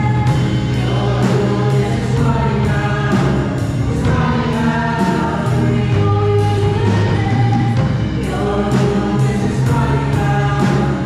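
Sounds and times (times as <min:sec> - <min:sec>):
choir singing: 0:00.0 - 0:11.0
instrumental accompaniment: 0:00.0 - 0:11.0.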